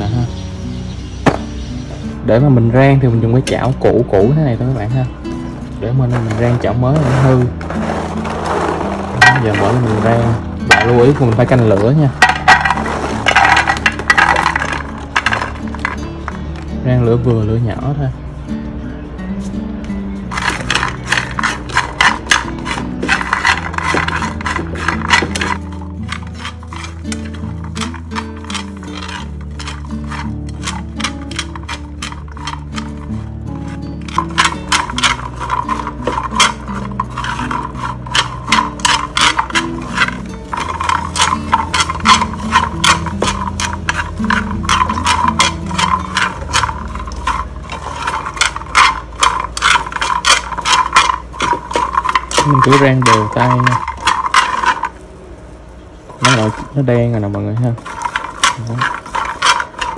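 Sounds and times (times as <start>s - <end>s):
background music: 0.0s - 59.9s
beans clattering in a frying pan: 5.8s - 16.7s, 20.3s - 55.1s, 56.1s - 59.9s.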